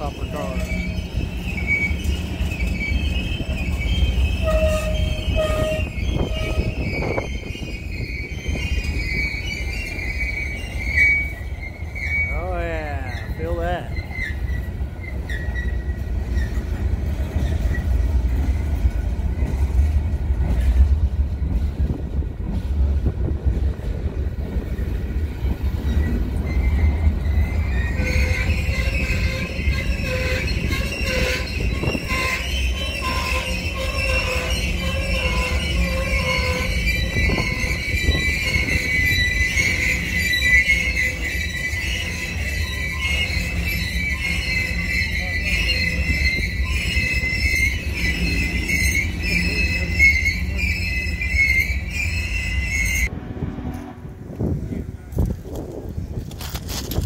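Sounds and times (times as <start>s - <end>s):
steel wheels squealing: 0.0s - 53.1s
low rumble of rail traffic: 0.0s - 57.0s.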